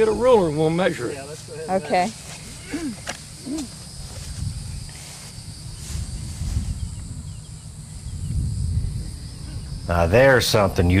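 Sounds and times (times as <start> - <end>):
insects droning: 0.0 - 11.0
low microphone rumble: 0.0 - 11.0.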